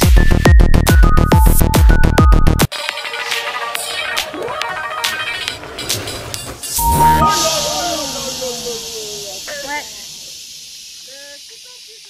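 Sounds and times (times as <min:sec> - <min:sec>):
steady hiss: 0:06.8 - 0:12.0.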